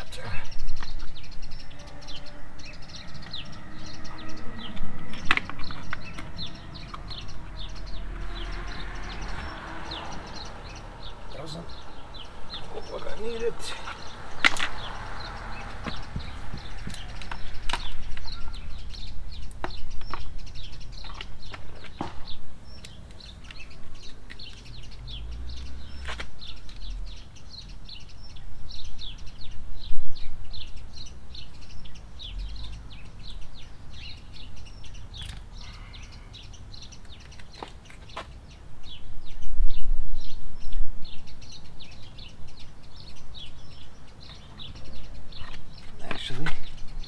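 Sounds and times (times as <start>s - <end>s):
small birds chirping: 0.0s - 47.0s
low rumble: 0.6s - 19.4s.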